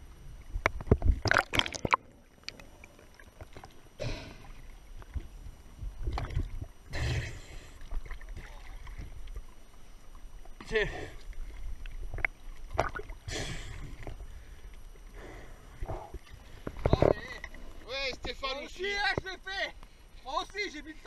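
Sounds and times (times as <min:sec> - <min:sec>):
water splashing and sloshing: 0:00.0 - 0:20.0.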